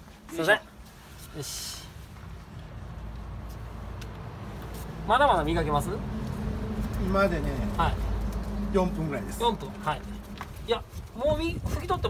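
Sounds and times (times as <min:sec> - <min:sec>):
vehicle engine idling: 0:04.4 - 0:11.0.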